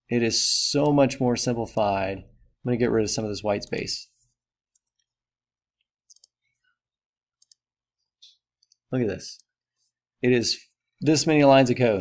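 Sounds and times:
mouse clicks: 5.8s - 6.4s
computer keyboard clicks: 6.0s - 6.4s.

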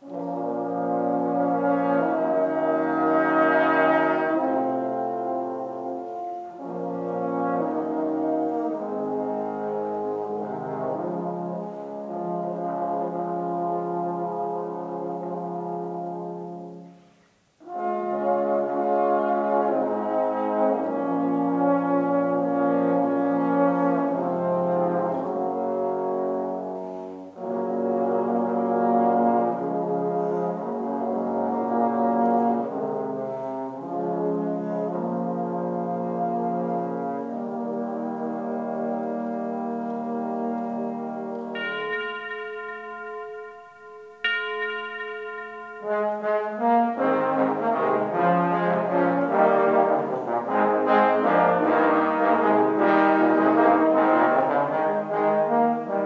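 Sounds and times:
trombones playing held chords: 0.0s - 56.0s.

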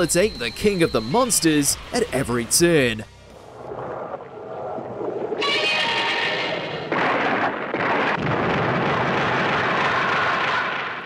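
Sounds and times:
explosive crashing noise: 6.7s - 11.0s.

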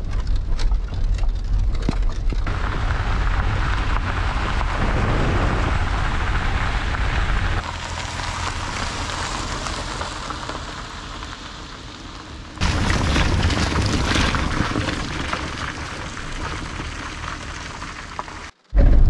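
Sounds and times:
car rumble: 0.0s - 19.0s
rain falling outdoors: 2.4s - 18.6s
rain and wet road hiss: 2.5s - 18.5s.

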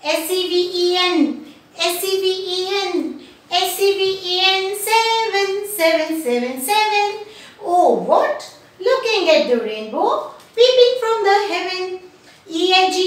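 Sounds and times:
woman singing unaccompanied: 0.0s - 7.3s.

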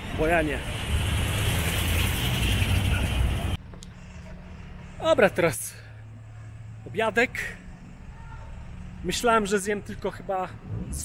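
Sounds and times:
bus engine rumbling: 0.0s - 9.5s.

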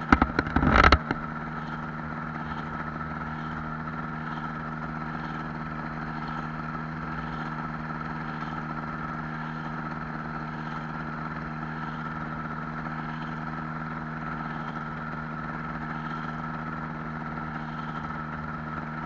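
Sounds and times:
gyroplane engine running steadily: 0.0s - 19.0s.

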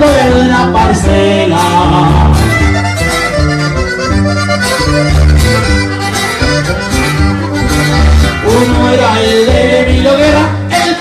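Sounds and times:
button accordion melody: 0.0s - 11.0s
strummed guitar: 0.0s - 11.0s.

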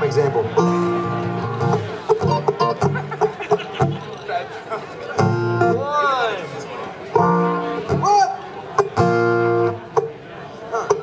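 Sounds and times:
acoustic guitar chord strummed: 0.5s - 3.2s, 7.2s - 8.1s, 8.8s - 10.1s
plucked guitar note: 0.5s - 4.0s, 5.2s - 5.8s, 7.2s - 8.2s, 8.8s - 10.2s.

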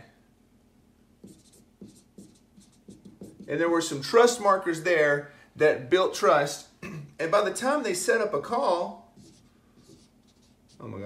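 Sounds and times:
marker scratching on a whiteboard: 1.2s - 4.0s, 8.5s - 11.0s.

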